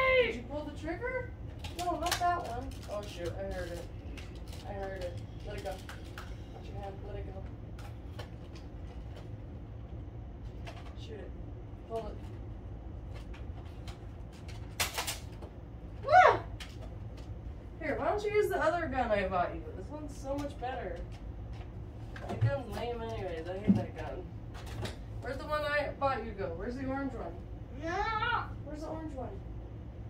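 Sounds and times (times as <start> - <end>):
steady low hum: 0.0 - 30.0
child squealing: 16.0 - 16.5.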